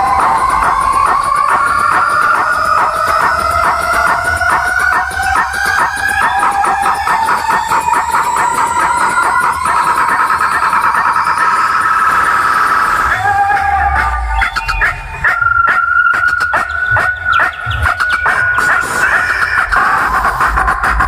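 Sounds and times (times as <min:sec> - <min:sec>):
stuttering rising synth tone: 0:00.0 - 0:21.0
low bass: 0:19.5 - 0:21.0.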